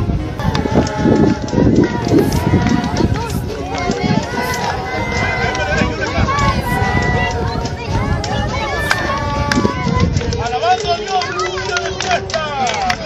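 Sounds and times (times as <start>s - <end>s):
low rumble on microphone: 0.0s - 10.6s
overlapping voices: 0.0s - 13.0s.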